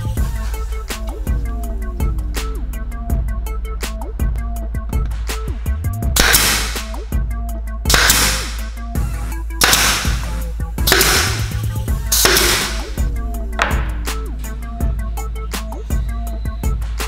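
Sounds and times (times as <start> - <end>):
background music: 0.0 - 17.0
nail gun firing: 6.2 - 7.0, 7.9 - 8.8, 9.6 - 14.0.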